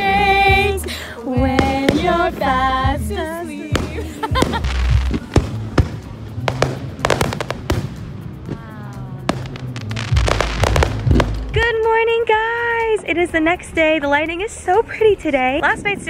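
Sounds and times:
fireworks bangs and crackles: 1.4s - 2.5s, 3.7s - 11.7s
low rumble: 1.4s - 11.9s.

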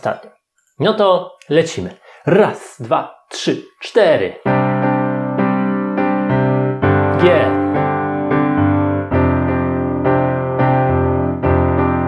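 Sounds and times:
digital piano playing chords: 4.4s - 12.0s.

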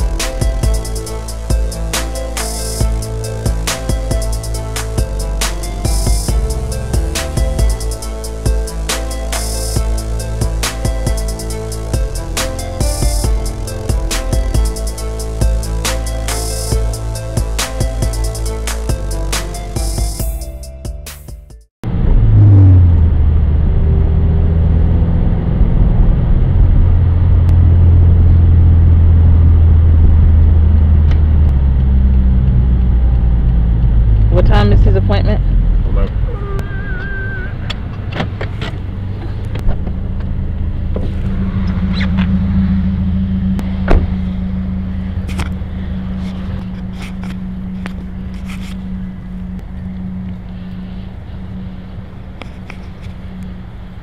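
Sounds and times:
car engine rumble and road noise: 0.0s - 54.0s.

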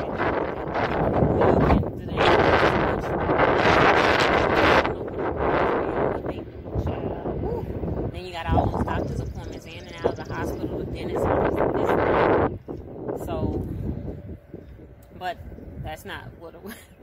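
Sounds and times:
woman's voice: 0.0s - 12.4s, 13.2s - 13.7s, 15.1s - 17.0s
wind buffeting microphone: 0.0s - 17.0s.

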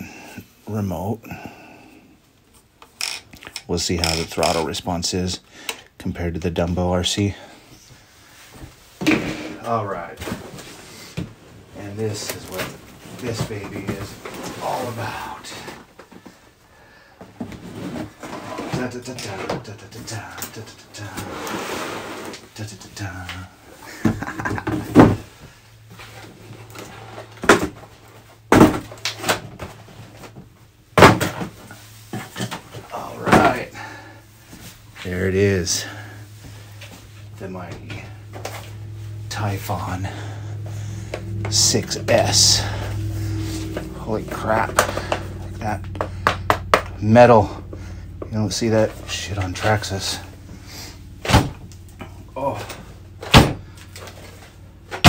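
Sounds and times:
faint low hum: 22.3s - 55.0s.

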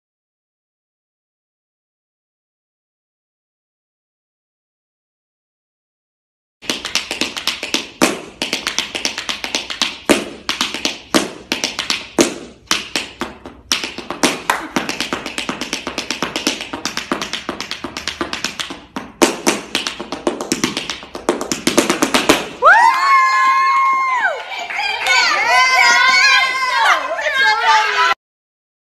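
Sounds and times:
tap shoes on wooden floor: 6.6s - 22.6s
person cheering: 22.6s - 28.2s.

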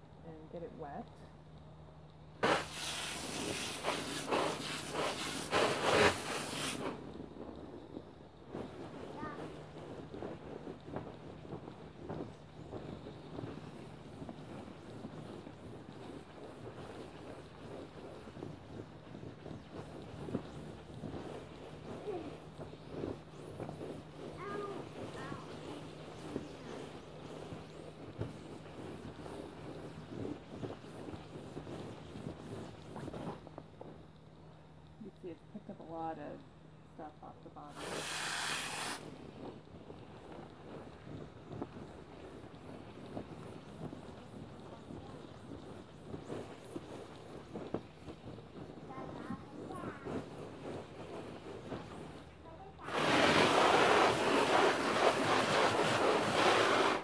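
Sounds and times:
wet mitt scrubbing vinyl: 2.4s - 7.0s, 48.9s - 57.0s
hose nozzle spray hissing: 2.4s - 7.1s, 37.6s - 39.4s, 49.1s - 57.0s.

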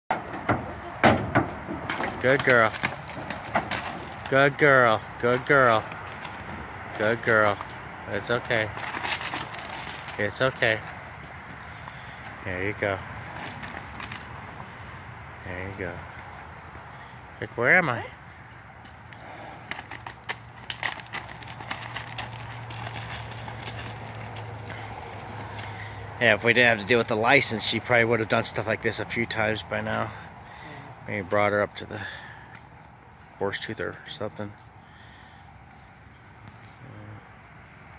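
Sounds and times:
horse hooves knocking on trailer floor: 0.1s - 4.6s, 19.6s - 28.5s
horse hooves crunching on gravel: 0.1s - 17.2s, 18.4s - 30.3s.

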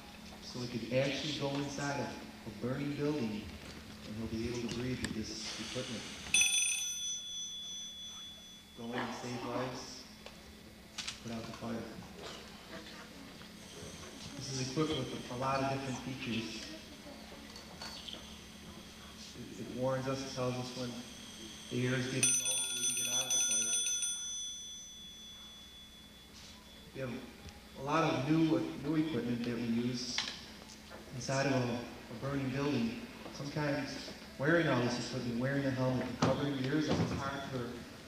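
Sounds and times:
breathing apparatus warning bell: 5.4s - 10.2s, 13.5s - 16.8s, 17.6s - 29.3s
metal object ringing: 6.3s - 10.1s, 17.5s - 28.8s.

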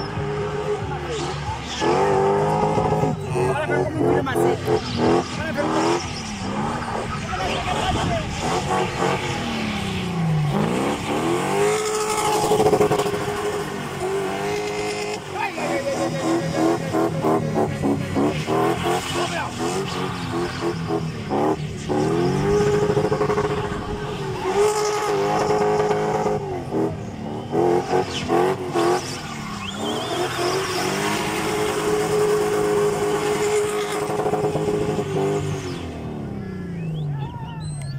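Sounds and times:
car engine revving hard: 0.0s - 36.9s.

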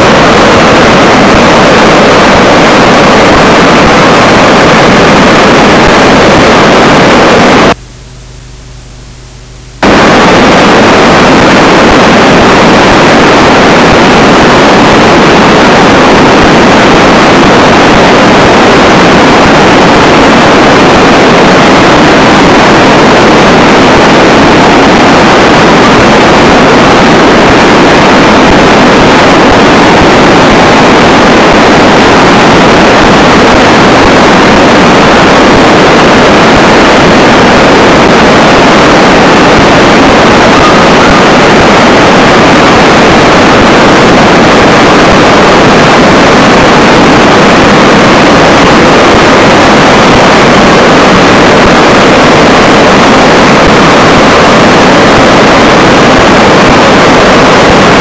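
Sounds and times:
river rushing: 0.0s - 7.7s, 9.8s - 58.0s.

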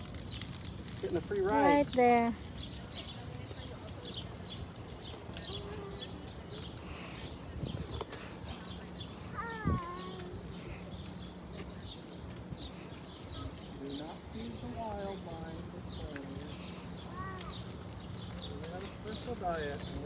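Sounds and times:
footsteps on paved path: 0.0s - 20.0s
stroller wheels rolling: 0.0s - 20.0s.

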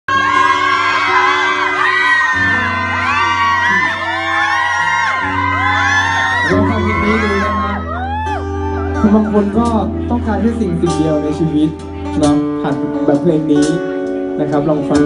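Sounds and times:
audience screaming and whooping: 0.1s - 9.6s
live band sustained chords: 0.1s - 15.0s
steady bass: 1.8s - 15.0s.

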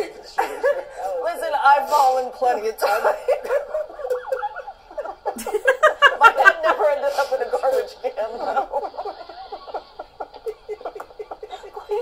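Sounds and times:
people laughing: 0.0s - 1.2s, 2.8s - 12.0s.

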